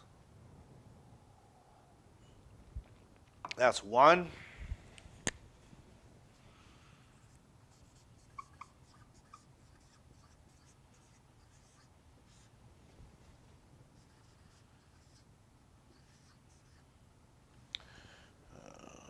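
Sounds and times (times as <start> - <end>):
marker squeaking on whiteboard: 7.3 - 12.5, 14.0 - 15.2, 15.9 - 16.8.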